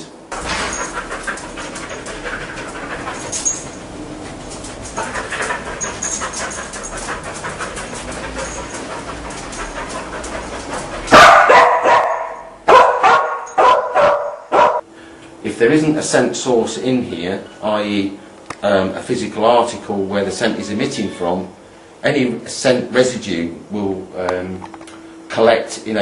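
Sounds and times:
dog barking sharply: 0:11.1 - 0:14.8.

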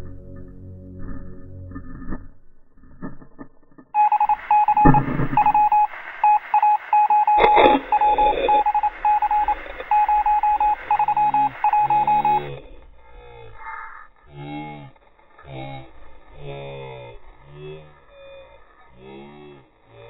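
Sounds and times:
electronic beeping tone: 0:04.0 - 0:12.6.

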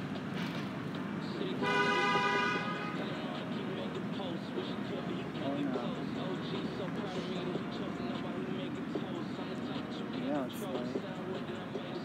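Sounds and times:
street traffic: 0:00.0 - 0:12.0
vehicle horn blast: 0:01.6 - 0:03.1.

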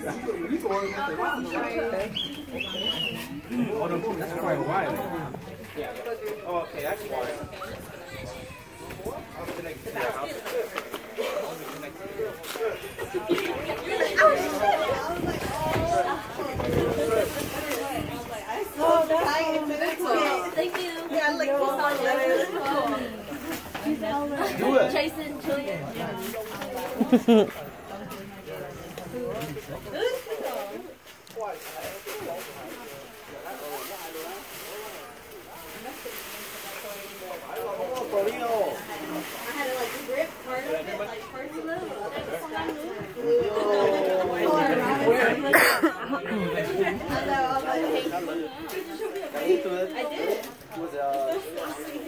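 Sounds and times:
women talking and chattering: 0:00.0 - 0:52.0.

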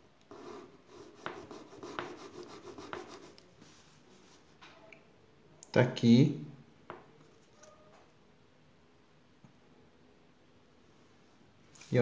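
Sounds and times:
pen scratching on paper: 0:00.3 - 0:04.0.

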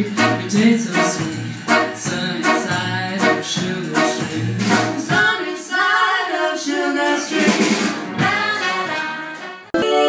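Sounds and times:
bass notes: 0:00.0 - 0:05.3
jazz band playing: 0:00.0 - 0:05.5, 0:07.0 - 0:10.0
woman singing: 0:08.2 - 0:10.0.

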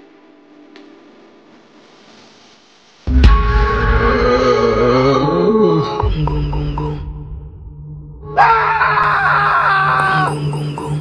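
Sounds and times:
low horror music drone: 0:03.1 - 0:11.0
person screaming: 0:08.3 - 0:10.4.

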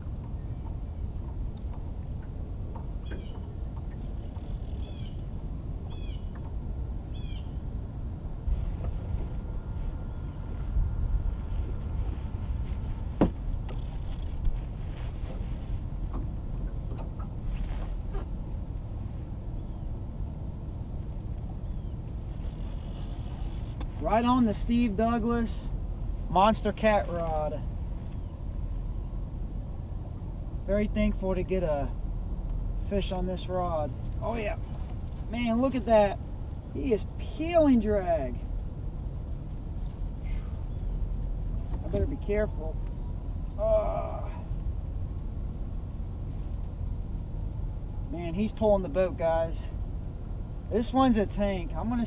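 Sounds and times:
water noise: 0:00.0 - 0:49.2
low rumbling wind: 0:00.0 - 0:52.0.

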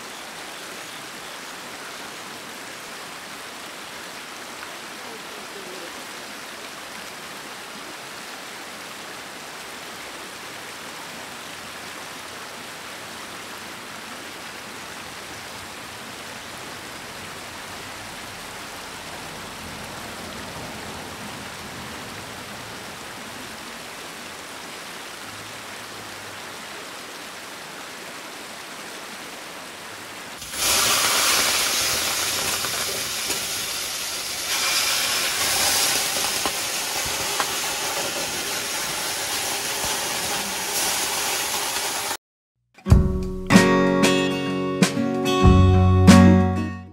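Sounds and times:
mountain stream flowing: 0:00.0 - 0:42.2
loud hissing rush: 0:30.4 - 0:42.2.

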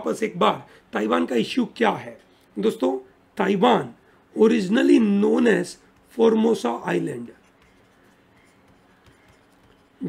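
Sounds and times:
stylus scratching on pen tablet: 0:05.3 - 0:10.0.

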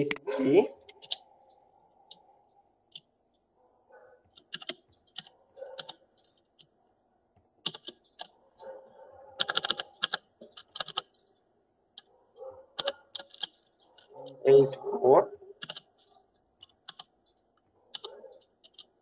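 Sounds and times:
computer keyboard typing: 0:00.8 - 0:01.3, 0:04.3 - 0:06.7, 0:07.6 - 0:08.4, 0:09.4 - 0:11.3, 0:12.7 - 0:14.2, 0:15.6 - 0:19.0.

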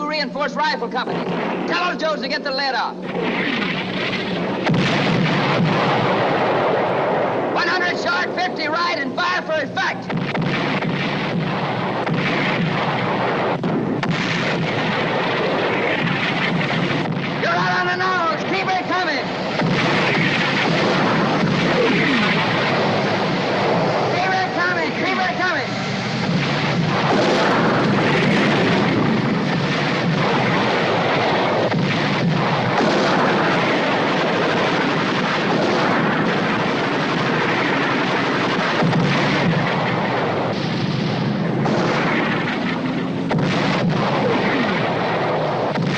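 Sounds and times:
artillery shell explosions: 0:00.0 - 0:45.9
tank guns firing: 0:00.0 - 0:45.9
gunfire: 0:01.0 - 0:45.9.

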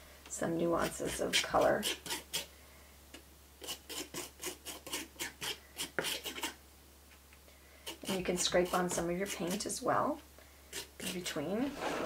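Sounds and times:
palette knife scraping paste: 0:00.8 - 0:02.5, 0:03.6 - 0:06.6, 0:07.8 - 0:09.8, 0:10.7 - 0:12.0.

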